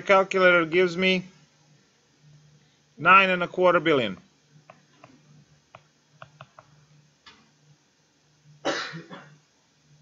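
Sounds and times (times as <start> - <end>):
faint steady hum: 0.0 - 10.0
man coughing: 8.6 - 9.4.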